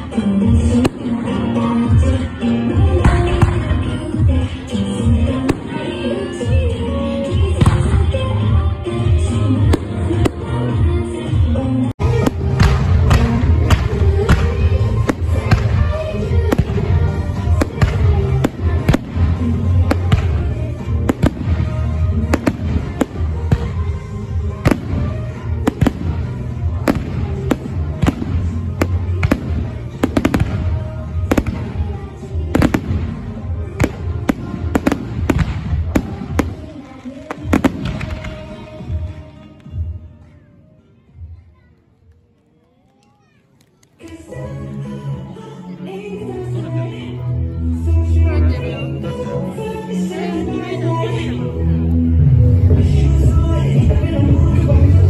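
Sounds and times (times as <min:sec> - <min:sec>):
music: 0:00.0 - 0:55.0
fireworks bangs and crackles: 0:00.4 - 0:08.6, 0:12.0 - 0:39.9.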